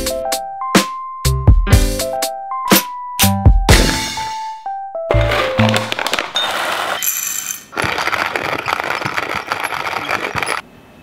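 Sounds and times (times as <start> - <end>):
intro music with percussive beat: 0.0 - 4.5.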